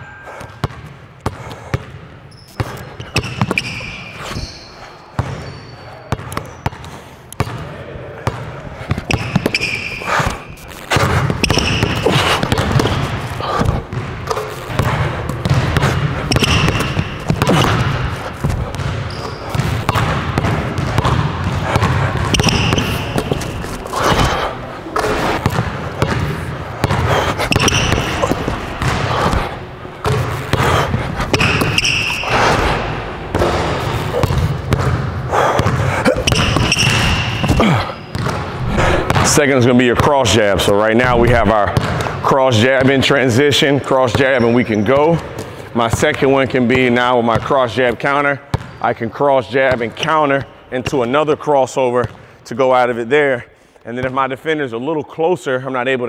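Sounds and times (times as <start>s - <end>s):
basketball bouncing on hardwood floor: 0.4s - 2.0s, 8.2s - 24.3s, 25.1s - 32.0s, 33.3s - 39.4s, 41.2s - 42.1s, 48.5s - 48.7s
sneaker squeaks: 2.2s - 7.6s, 8.2s - 13.3s, 13.9s - 20.2s, 20.8s - 24.4s, 25.0s - 29.4s, 30.0s - 32.9s, 33.8s - 35.0s, 35.6s - 39.3s.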